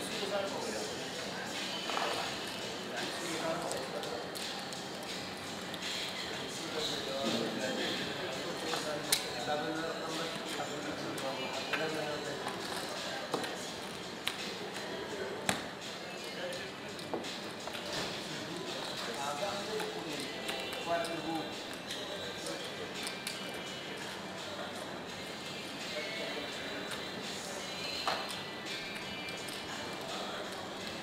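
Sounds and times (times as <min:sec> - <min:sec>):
murmur of chatter: 0:00.0 - 0:31.0.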